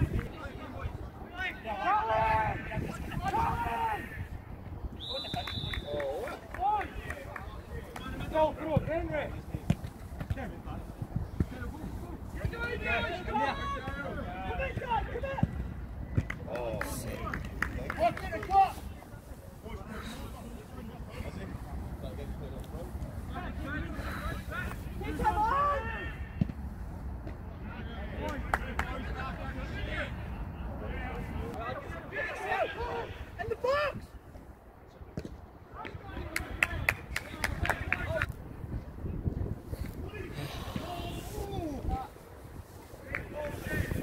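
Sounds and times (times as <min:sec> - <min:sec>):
wind rumble on microphone: 0:00.0 - 0:01.2, 0:02.1 - 0:05.0, 0:36.1 - 0:44.0
players shouting: 0:00.5 - 0:04.3, 0:12.3 - 0:15.6, 0:23.4 - 0:26.5, 0:30.8 - 0:34.0
short sharp calls or claps: 0:05.1 - 0:08.1.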